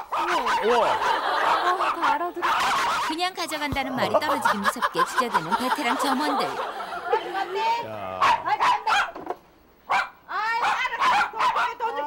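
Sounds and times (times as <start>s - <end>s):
small dogs yapping: 0.0s - 3.2s, 8.2s - 9.2s, 9.9s - 12.0s.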